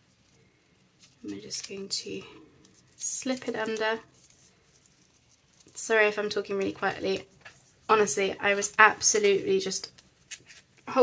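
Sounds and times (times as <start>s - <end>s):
paper and card rustling: 0.0s - 11.0s
woman speaking: 1.2s - 2.4s, 3.0s - 4.0s, 5.8s - 7.3s, 7.9s - 9.9s.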